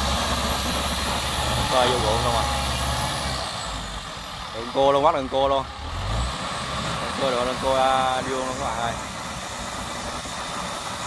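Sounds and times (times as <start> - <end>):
combine harvester engine running: 0.0 - 11.0.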